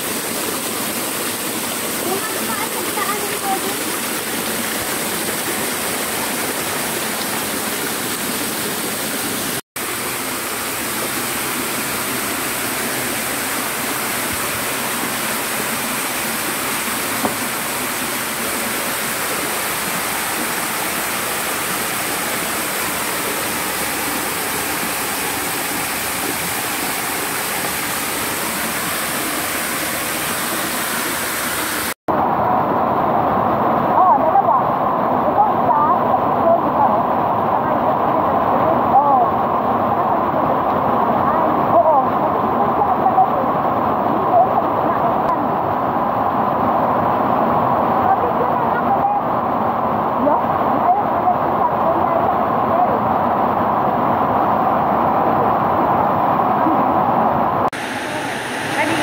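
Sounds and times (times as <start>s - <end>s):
stream water rushing: 0.0s - 59.0s.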